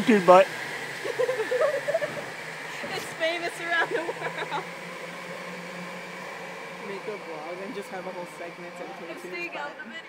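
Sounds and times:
mechanical hum: 0:00.0 - 0:10.0
voices: 0:00.0 - 0:10.0.

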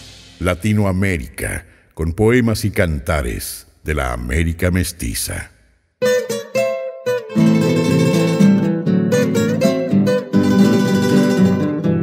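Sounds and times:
acoustic guitar music: 0:06.0 - 0:12.0.

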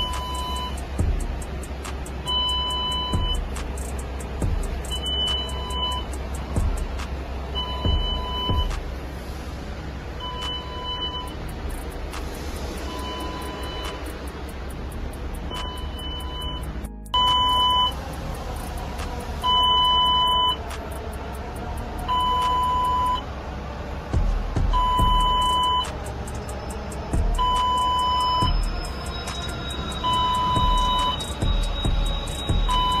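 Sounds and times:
electronic warning beeper: 0:00.0 - 0:00.8, 0:02.3 - 0:03.5, 0:04.9 - 0:06.1, 0:07.6 - 0:08.7, 0:10.2 - 0:11.4, 0:12.9 - 0:14.2, 0:15.5 - 0:18.0, 0:19.4 - 0:20.6, 0:22.1 - 0:23.2, 0:24.7 - 0:33.0
dull low thumps: 0:00.8 - 0:01.8, 0:03.1 - 0:05.2, 0:06.2 - 0:07.2, 0:07.8 - 0:09.0, 0:24.1 - 0:25.5, 0:27.2 - 0:27.6, 0:28.4 - 0:28.9, 0:30.6 - 0:33.0.

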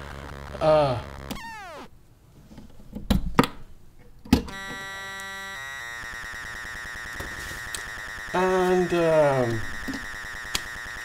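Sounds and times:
buzzy synth tone: 0:00.0 - 0:01.9, 0:04.5 - 0:11.0.

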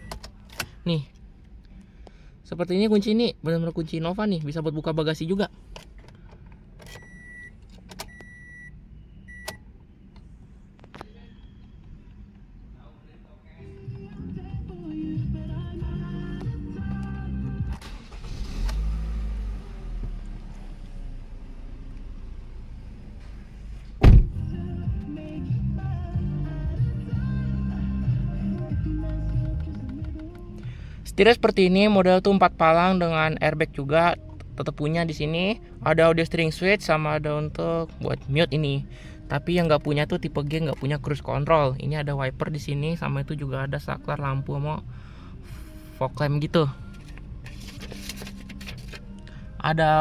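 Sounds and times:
song on car audio: 0:00.0 - 0:01.0, 0:13.6 - 0:22.5, 0:23.9 - 0:50.0.

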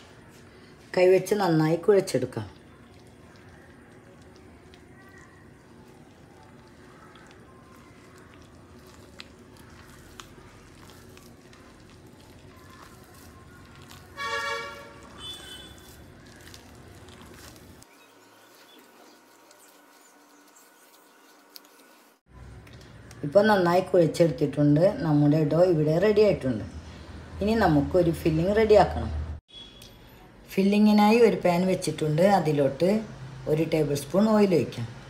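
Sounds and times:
hand mixing paste in glass bowl: 0:02.0 - 0:21.9.

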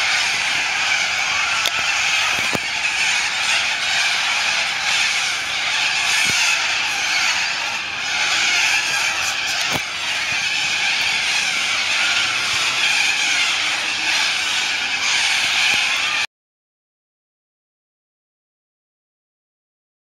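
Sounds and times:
flock of cockatoos calling: 0:00.0 - 0:16.3.

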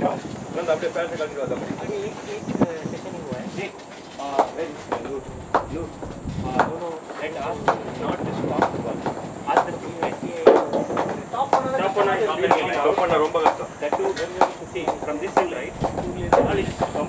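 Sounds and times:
players calling across field: 0:00.0 - 0:17.0.

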